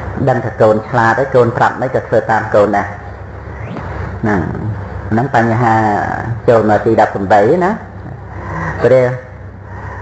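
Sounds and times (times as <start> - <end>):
low steady hum: 0.0 - 10.0
man speaking: 0.2 - 3.0, 4.2 - 9.4.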